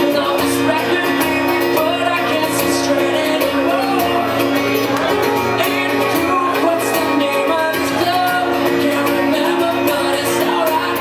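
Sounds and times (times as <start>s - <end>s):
acoustic guitar playing: 0.0s - 11.0s
man singing: 0.0s - 11.0s.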